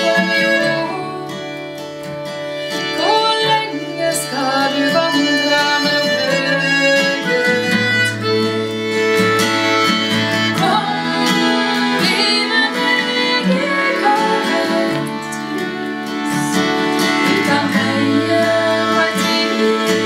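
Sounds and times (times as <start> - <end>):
button accordion folk tune: 0.0 - 20.0
strummed acoustic guitar: 0.0 - 20.0.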